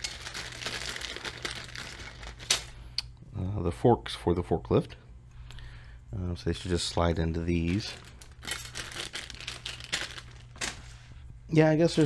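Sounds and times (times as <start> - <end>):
plastic bags crinkling: 0.0 - 2.9, 6.8 - 11.2, 11.8 - 12.0.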